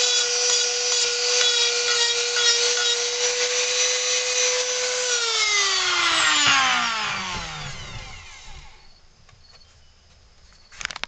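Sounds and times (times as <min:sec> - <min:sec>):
rotary tool whine spinning down: 0:05.0 - 0:09.0.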